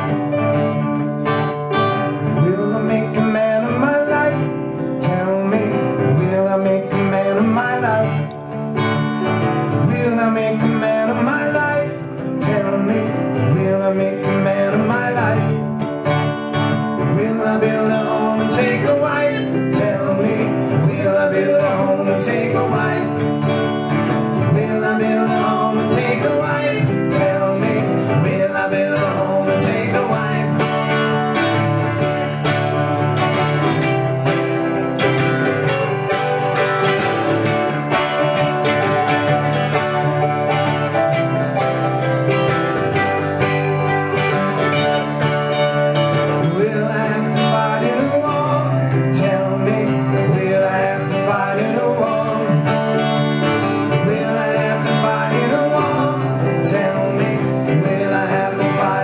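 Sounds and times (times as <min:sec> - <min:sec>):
live band playing: 0:00.0 - 0:59.0
strummed guitar: 0:00.0 - 0:59.0.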